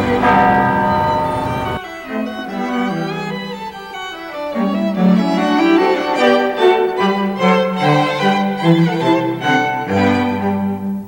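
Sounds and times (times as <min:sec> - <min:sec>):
bells ringing: 0:00.0 - 0:07.8.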